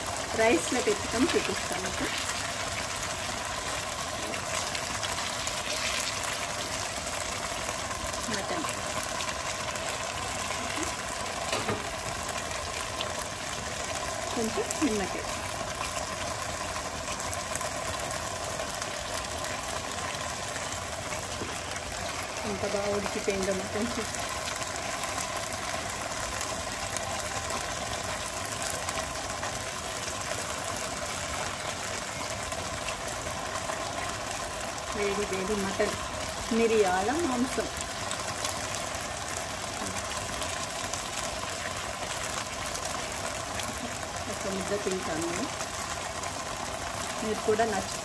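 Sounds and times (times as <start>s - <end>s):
stovetop cooking rushing noise: 0.0s - 48.0s.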